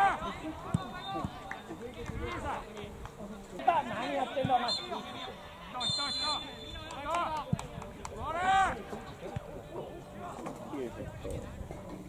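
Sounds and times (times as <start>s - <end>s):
young players shouting: 8.2s - 8.9s.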